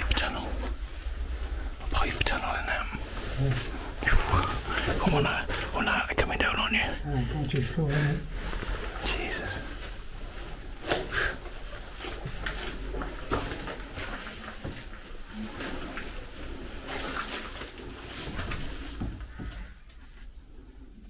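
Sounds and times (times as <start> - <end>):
clothing and backpack rustling: 0.0 - 6.0, 6.6 - 20.8.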